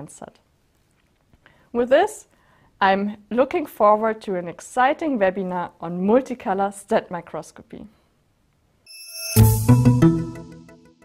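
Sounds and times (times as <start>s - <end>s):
musical logo sting: 8.9s - 11.0s.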